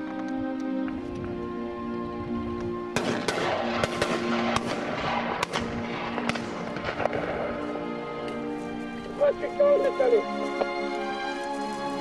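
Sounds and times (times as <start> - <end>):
string music: 0.0 - 12.0
shotgun shots: 3.0 - 7.6.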